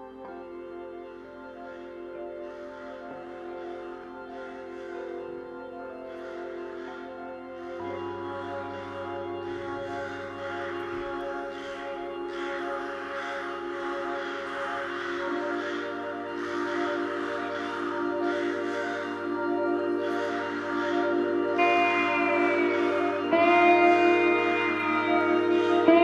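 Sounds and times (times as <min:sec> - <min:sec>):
keyboard sustained chords: 0:00.0 - 0:26.0
high sliding note: 0:21.5 - 0:26.0.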